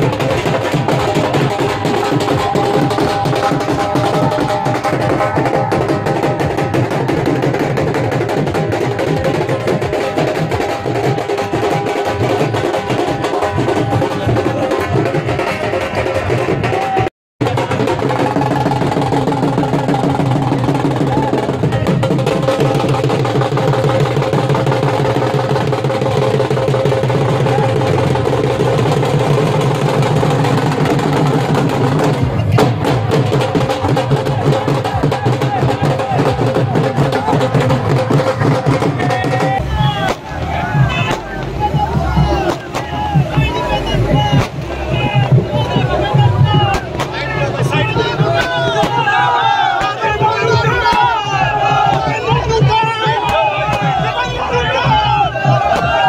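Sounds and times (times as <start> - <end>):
dhols beaten in fast rhythm: 0.0 - 56.0.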